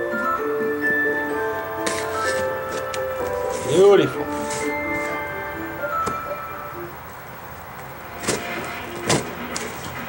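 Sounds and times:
sharp cardboard and tape sounds: 0:08.1 - 0:10.0.

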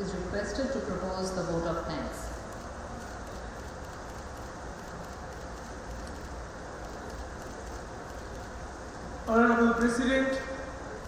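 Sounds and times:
low hum: 0:00.0 - 0:11.0
steady hiss: 0:02.2 - 0:11.0.

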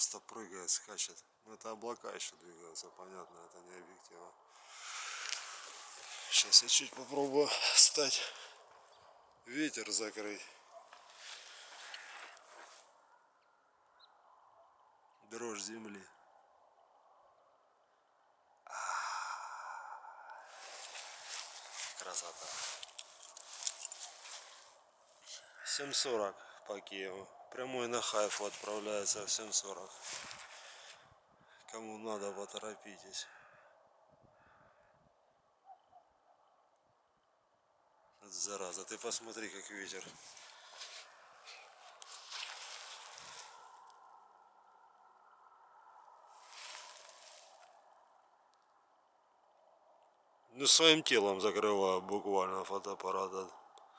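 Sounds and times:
wind gusts with rustling: 0:04.4 - 0:13.1, 0:20.0 - 0:25.7, 0:27.2 - 0:31.7, 0:39.5 - 0:48.1
loud sighing exhale: 0:18.7 - 0:21.1.

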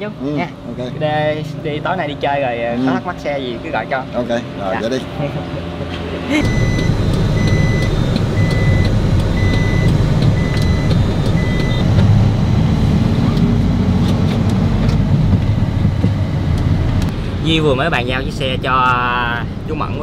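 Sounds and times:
van engine and road rumble: 0:00.0 - 0:20.0
electronic warning beeps: 0:06.4 - 0:11.9.

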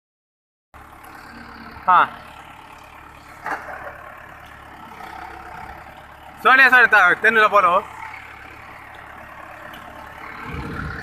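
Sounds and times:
tractor diesel engine idling: 0:00.8 - 0:11.0.

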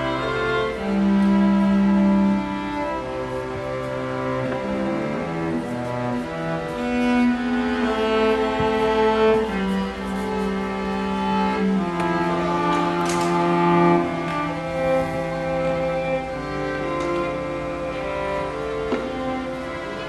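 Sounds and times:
cello holding low notes: 0:00.0 - 0:20.0
violins and viola sustained notes: 0:00.0 - 0:20.0.

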